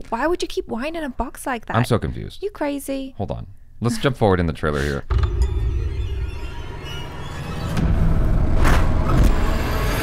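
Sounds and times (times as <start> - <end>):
ominous music: 5.1 - 10.0.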